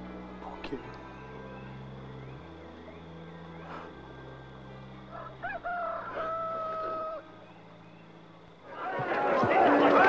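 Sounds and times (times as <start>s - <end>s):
rooster crowing: 5.1s - 7.2s.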